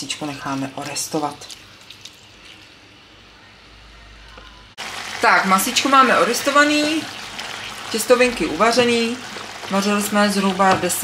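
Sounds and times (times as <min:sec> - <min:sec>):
chicken sizzling in a pan: 0:04.8 - 0:11.0.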